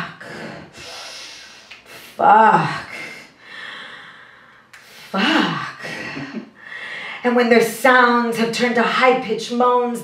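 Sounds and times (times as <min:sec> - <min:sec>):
woman speaking: 0:02.0 - 0:03.4, 0:05.1 - 0:06.4, 0:07.2 - 0:10.0.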